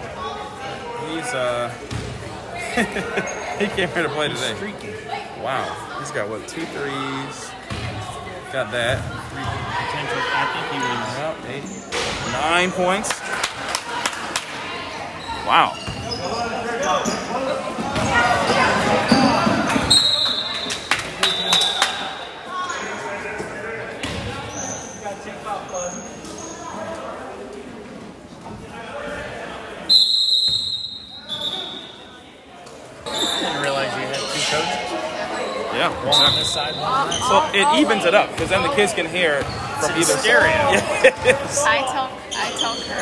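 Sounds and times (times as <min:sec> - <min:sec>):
voices echoing: 0:00.0 - 0:43.0
short high squeaks: 0:42.3 - 0:43.0.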